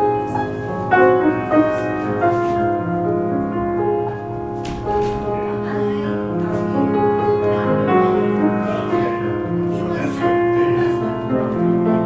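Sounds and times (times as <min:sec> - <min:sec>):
piano playing a hymn: 0:00.0 - 0:12.0.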